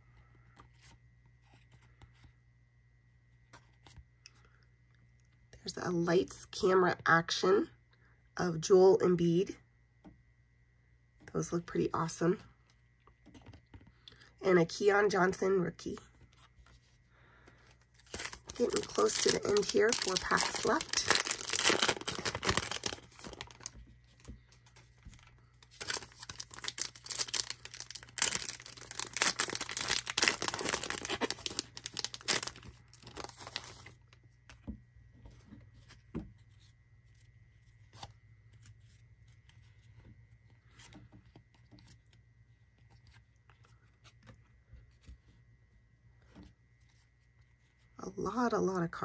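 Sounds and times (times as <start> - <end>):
foil wrapper crinkling and tearing: 17.9 - 34.2.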